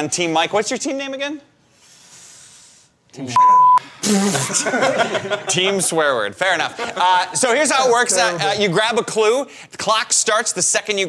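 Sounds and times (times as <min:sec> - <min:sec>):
censor bleep: 0:03.4 - 0:03.8.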